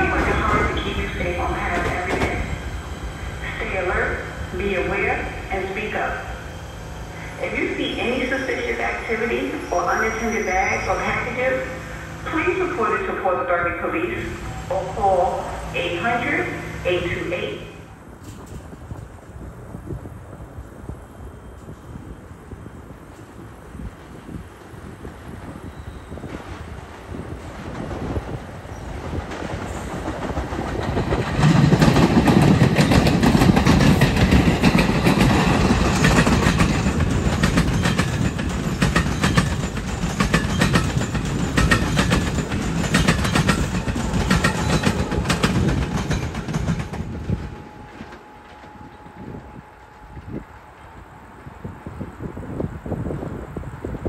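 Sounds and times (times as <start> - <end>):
electric train rumbling past: 0.0 - 54.0
wheels clicking over rail joints: 29.2 - 48.7.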